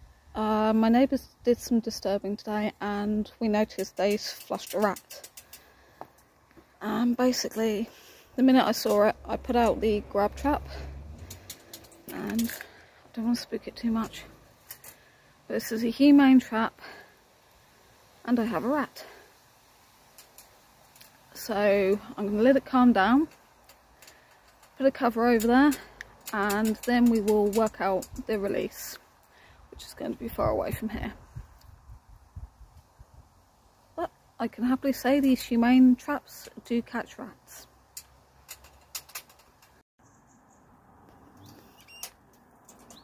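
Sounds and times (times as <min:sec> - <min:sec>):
rat gnawing metal bars: 0:03.7 - 0:05.7, 0:23.6 - 0:28.3.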